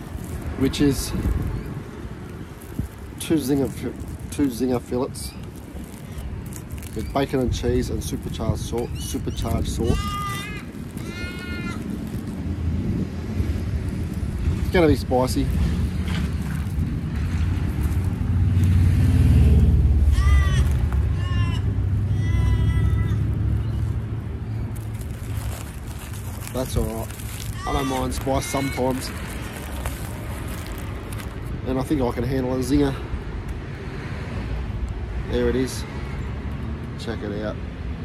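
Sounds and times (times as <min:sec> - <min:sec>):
wind rumbling on microphone: 0:00.0 - 0:32.3
animal cry: 0:09.9 - 0:11.9, 0:20.0 - 0:23.8
low rumble: 0:15.5 - 0:27.6.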